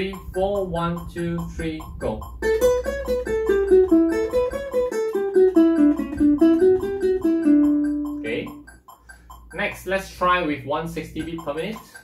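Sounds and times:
ukulele plucked notes: 0.0 - 8.7.

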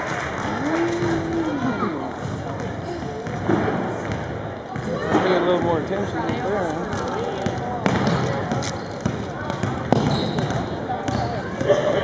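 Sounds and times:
voices echoing in a hall: 0.0 - 12.0
basketball bouncing on hardwood floor: 2.2 - 4.9, 5.6 - 11.3.

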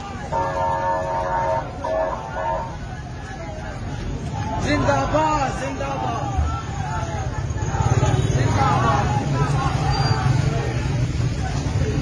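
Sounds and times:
crowd of men shouting slogans: 0.0 - 10.9.

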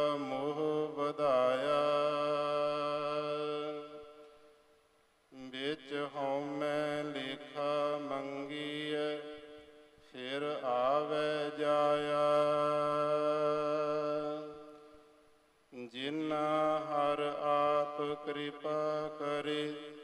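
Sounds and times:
single voice chanting melodically: 0.0 - 4.4, 5.3 - 15.1, 15.7 - 20.0.

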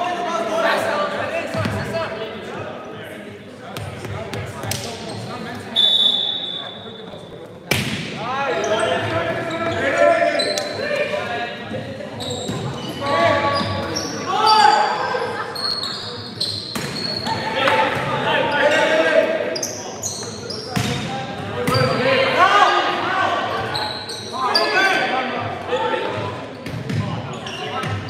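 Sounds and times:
referee's whistle: 5.8 - 7.0
sneakers squeaking on hardwood floor: 8.5 - 10.9, 11.7 - 14.9, 15.5 - 18.9, 19.5 - 22.1, 23.6 - 24.8, 25.8 - 28.0.

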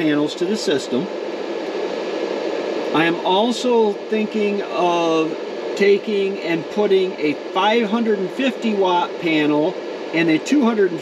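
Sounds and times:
fan running: 0.0 - 11.0.

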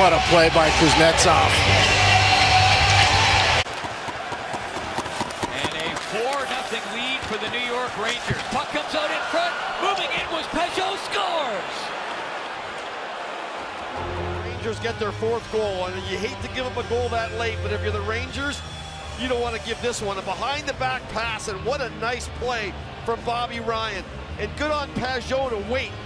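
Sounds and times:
loud arena crowd noise: 0.0 - 26.0
sticks and puck clacking on ice: 3.7 - 8.6.

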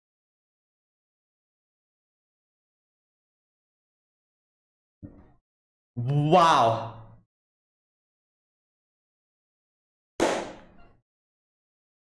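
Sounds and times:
sharp bang: 10.2 - 10.7.

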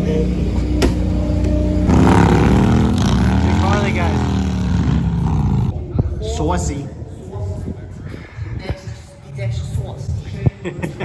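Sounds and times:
motorcycle engine revving: 1.0 - 5.8.

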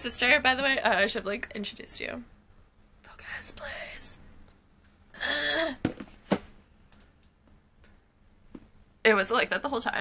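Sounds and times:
person breathy vocal sound: 5.2 - 5.8.

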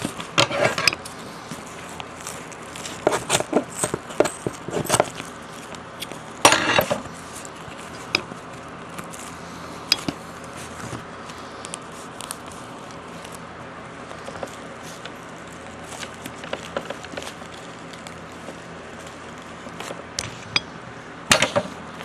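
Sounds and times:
plastic wrapping crinkling: 0.0 - 20.2.

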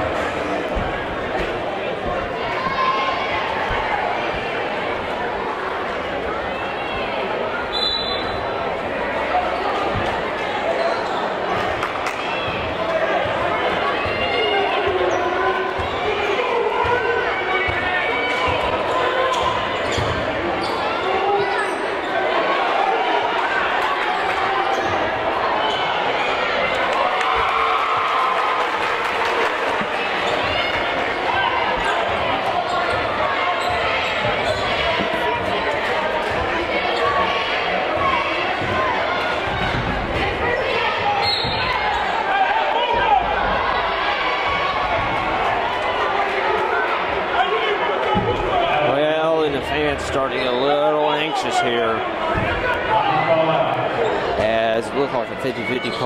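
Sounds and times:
spectators talking: 0.0 - 56.0.

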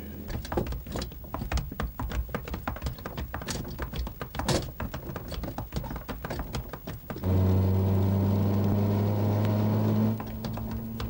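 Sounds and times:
horse cart clicks: 0.3 - 7.3, 9.4 - 11.0.

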